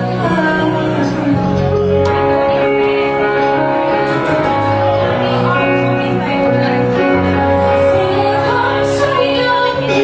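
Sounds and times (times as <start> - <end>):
person singing: 0.0 - 3.1, 7.4 - 10.0
acoustic guitar: 0.0 - 10.0
keyboard: 0.0 - 10.0.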